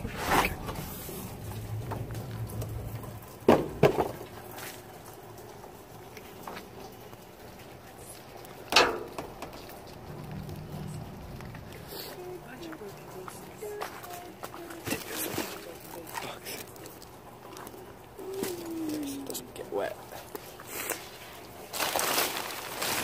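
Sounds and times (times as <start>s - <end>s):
low trash handling noise: 0.0s - 7.8s, 8.4s - 16.6s.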